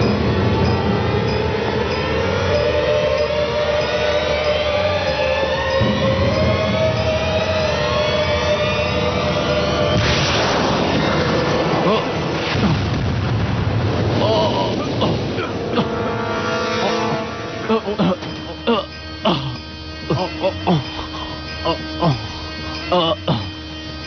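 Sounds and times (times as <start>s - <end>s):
tense rising drone: 0.0s - 24.0s.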